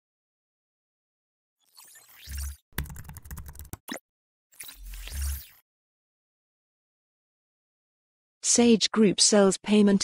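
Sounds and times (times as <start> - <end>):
keyboard typing clicks: 2.8 - 4.0.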